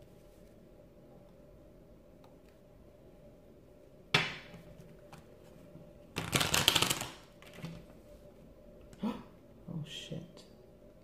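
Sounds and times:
cards riffling: 6.2 - 7.7.

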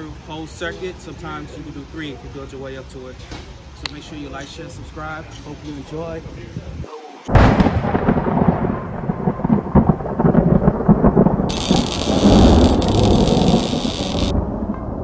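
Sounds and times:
steady high hiss: 0.0 - 3.0, 11.5 - 14.3
thunder rumble: 7.3 - 15.0.

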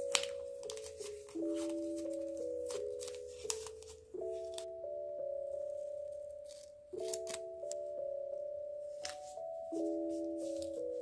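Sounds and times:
gentle background music: 0.0 - 11.0
scissors cutting paper tape: 6.4 - 7.4.

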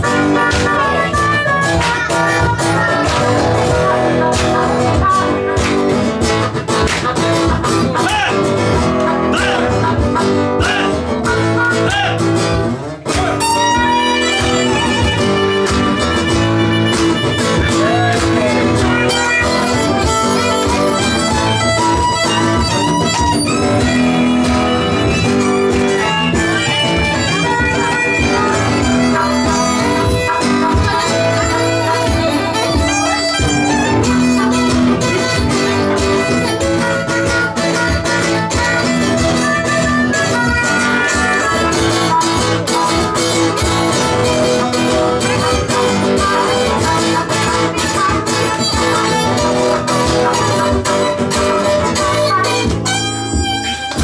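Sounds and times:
acoustic guitar: 0.0 - 54.0
harmonica: 0.0 - 54.0
violin: 13.4 - 54.0.

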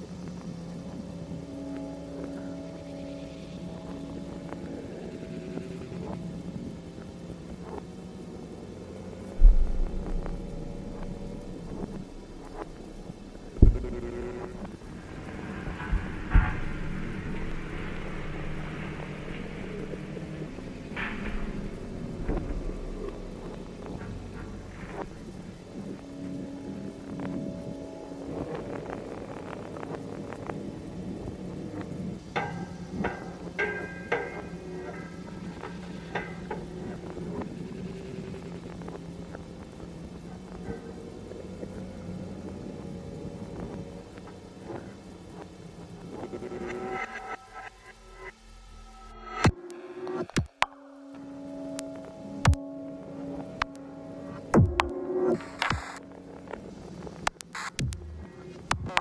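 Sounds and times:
low electronic hum: 0.0 - 59.0
sharp electronic hits: 9.3 - 25.8
heavy low boom: 9.4 - 25.5
glitchy clicks and blips: 9.4 - 26.0, 54.5 - 59.0.

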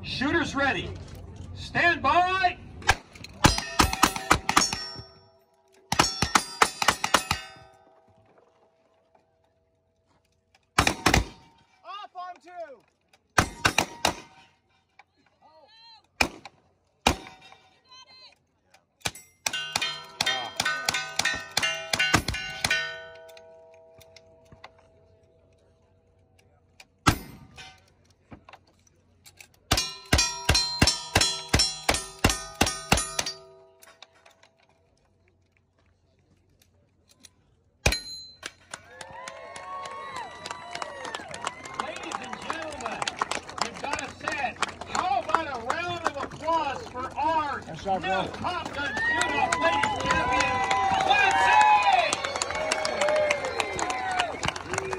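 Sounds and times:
steel targets clanging: 3.2 - 8.2, 19.0 - 25.2, 27.0 - 28.0, 29.3 - 34.5, 37.8 - 38.7.

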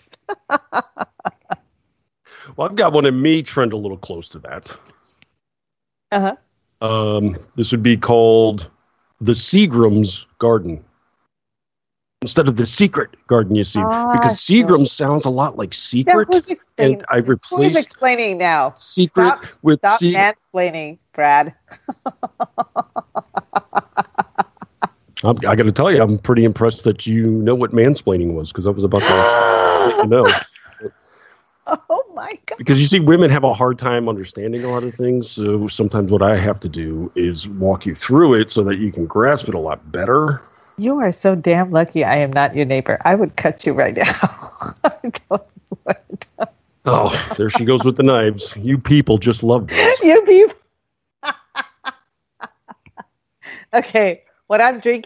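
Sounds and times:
person laughing in rapid bursts: 0.0 - 1.6, 21.7 - 24.9, 29.0 - 30.9, 34.6 - 35.1, 44.0 - 48.5, 49.6 - 50.3, 51.2 - 53.0
bursts of laughter: 29.0 - 30.9, 46.9 - 48.3.

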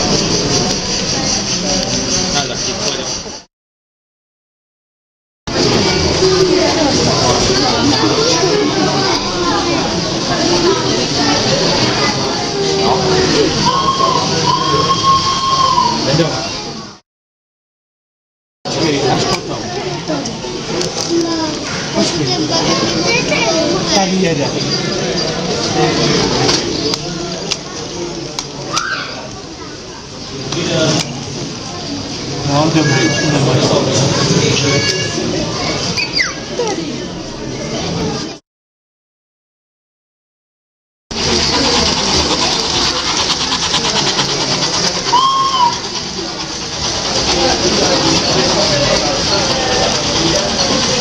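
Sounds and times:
adults and children chattering: 0.0 - 3.5, 5.5 - 17.0, 18.7 - 38.4, 41.1 - 51.0
whistled tone: 13.6 - 16.2, 36.0 - 36.4, 45.1 - 46.0
toy trains clattering on metal track: 41.2 - 51.0.

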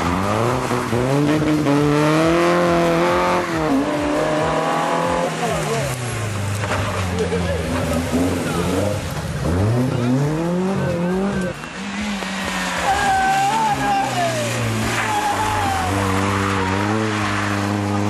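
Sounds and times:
rally car engine revving: 0.0 - 18.0.

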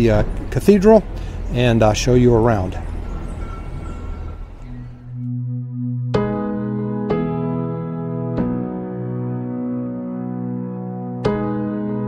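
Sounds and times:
street background hiss and rumble: 0.0 - 5.2
background music sustained tones: 2.8 - 12.0.

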